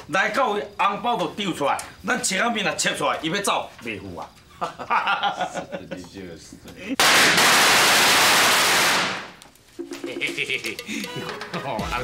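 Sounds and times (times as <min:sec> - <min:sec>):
man laughing: 0:04.5 - 0:06.1, 0:09.8 - 0:12.0
firecrackers bursting: 0:07.0 - 0:09.6.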